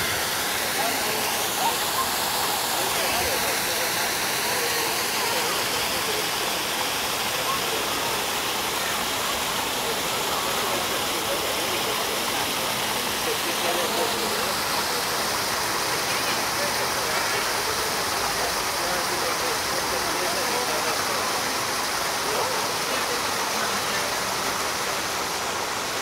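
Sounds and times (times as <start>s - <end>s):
fountain water pouring into basin: 0.0s - 26.0s
people talking indistinctly: 0.0s - 26.0s.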